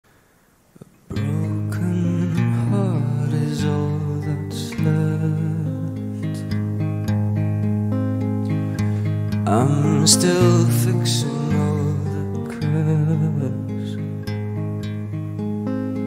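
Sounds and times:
acoustic guitar: 0:00.7 - 0:16.0.

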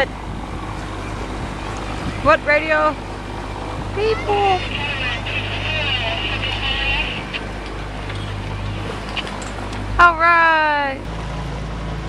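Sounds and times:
boat engine droning: 0:00.0 - 0:12.0
water and air noise: 0:00.0 - 0:12.0.

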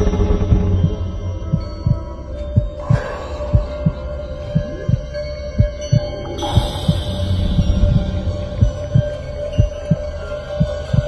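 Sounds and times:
heartbeat-like low pulse: 0:00.0 - 0:11.0.

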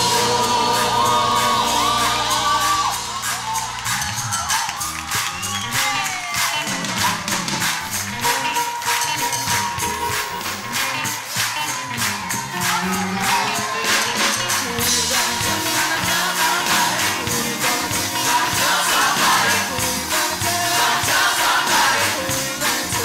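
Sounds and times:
choir singing: 0:00.0 - 0:04.0, 0:12.7 - 0:23.0
crowd cheering: 0:00.0 - 0:23.0
clapped beat: 0:00.7 - 0:23.0.

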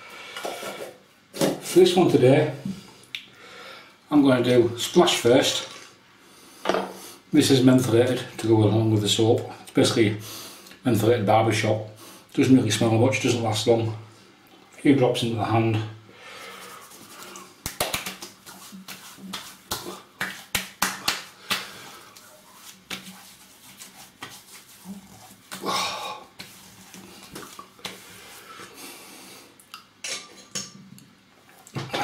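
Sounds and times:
wet hands slapping face: 0:17.2 - 0:24.7, 0:26.4 - 0:28.1.

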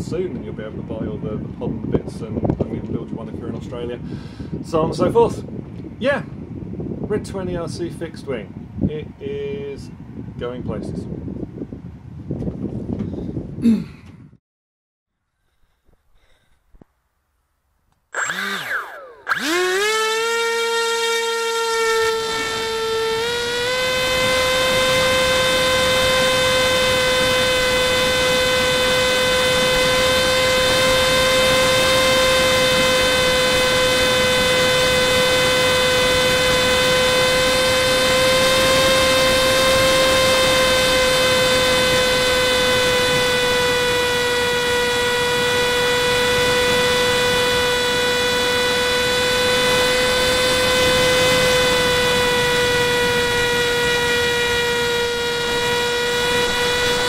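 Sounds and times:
wind noise: 0:00.0 - 0:14.4, 0:20.4 - 0:57.0
electric motor propeller whine: 0:18.1 - 0:57.0.

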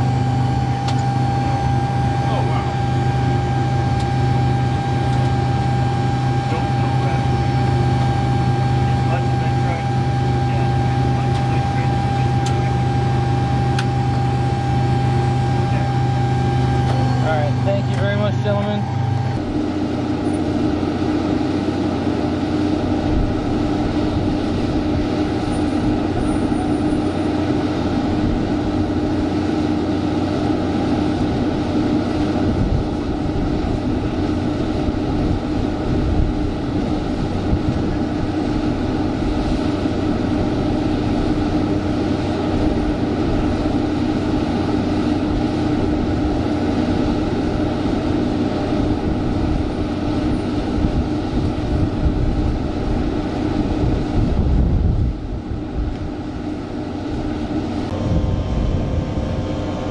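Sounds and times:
machinery drone with low hum: 0:00.0 - 0:59.9.

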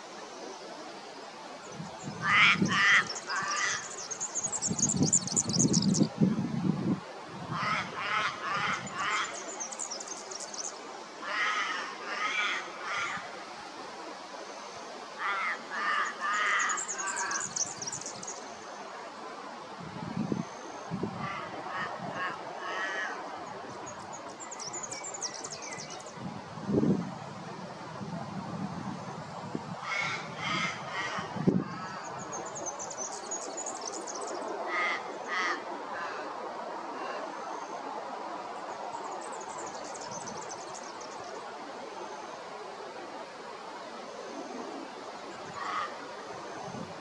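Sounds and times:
wind buffeting microphone: 0:01.7 - 0:09.3, 0:19.8 - 0:22.6, 0:23.5 - 0:32.8
harsh caw-like bird calls: 0:02.2 - 0:04.0, 0:07.5 - 0:09.4, 0:11.2 - 0:13.3, 0:15.2 - 0:17.6, 0:21.2 - 0:23.3, 0:29.8 - 0:32.2, 0:34.7 - 0:36.3, 0:45.5 - 0:46.0.

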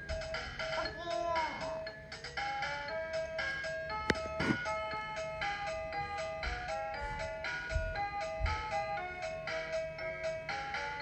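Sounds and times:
toy playing beeping melody: 0:01.8 - 0:11.0.

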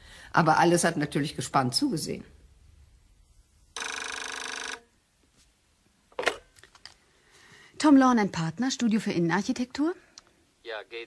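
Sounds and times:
telephone ringing: 0:03.8 - 0:04.9.

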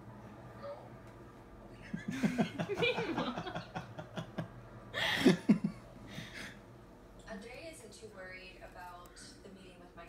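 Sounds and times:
woman laughing: 0:02.0 - 0:04.4, 0:05.0 - 0:05.7.

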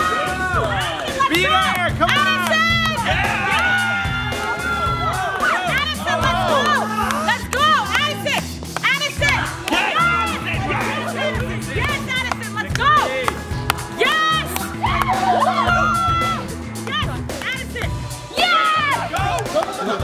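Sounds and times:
people shouting excitedly: 0:00.0 - 0:08.4, 0:09.0 - 0:17.1, 0:18.3 - 0:20.0
background music with bass: 0:00.0 - 0:20.0.

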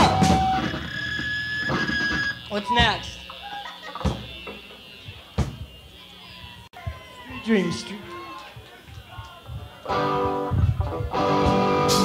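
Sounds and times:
high steady whine: 0:00.0 - 0:12.0
stage noise: 0:00.0 - 0:12.0
punk rock band playing: 0:09.8 - 0:12.0.

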